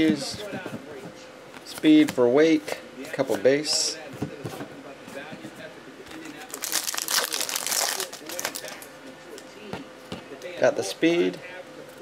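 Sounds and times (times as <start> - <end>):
card pack wrapper crinkling and tearing: 6.5 - 8.9.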